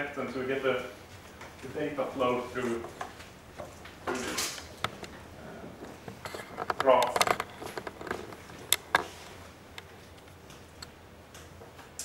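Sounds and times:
steady room hum: 0:00.0 - 0:12.0.

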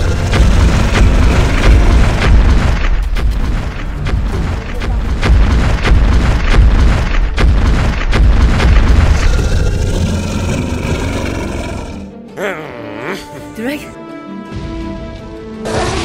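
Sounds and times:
deep booming rumble: 0:00.0 - 0:11.0.

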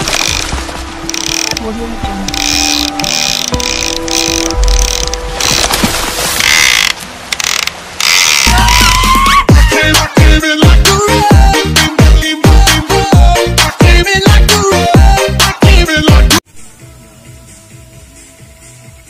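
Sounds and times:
background music: 0:00.0 - 0:05.8, 0:08.5 - 0:19.0
fishing reel clicking: 0:01.1 - 0:01.6, 0:02.3 - 0:05.7, 0:06.4 - 0:08.5.

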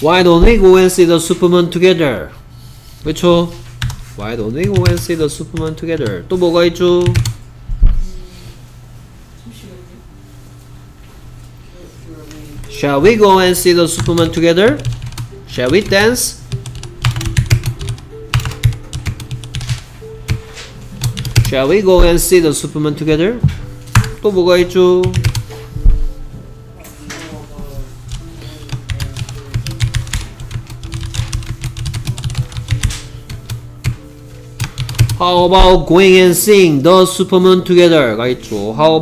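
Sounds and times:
computer keyboard typing: 0:03.8 - 0:06.2, 0:07.0 - 0:07.4, 0:13.8 - 0:22.3, 0:23.9 - 0:24.2, 0:25.0 - 0:25.5, 0:28.1 - 0:34.0, 0:34.6 - 0:35.5
background music: 0:12.7 - 0:39.0.

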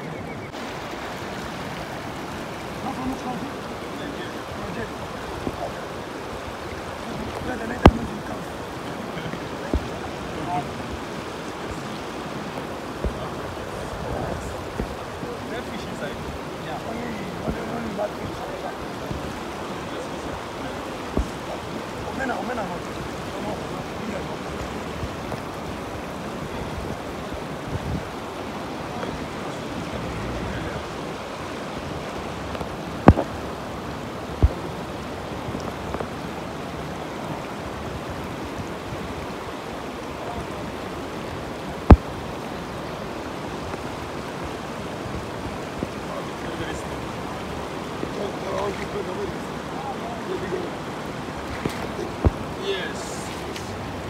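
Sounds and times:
river water rushing over rocks: 0:00.0 - 0:54.0.

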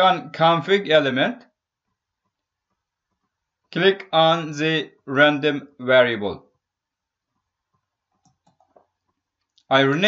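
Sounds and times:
computer mouse clicks: 0:08.2 - 0:08.9.

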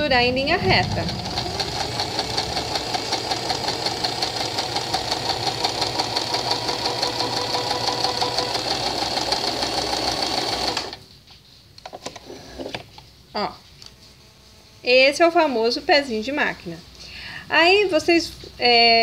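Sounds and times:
sewing machine stitching: 0:00.5 - 0:11.0.

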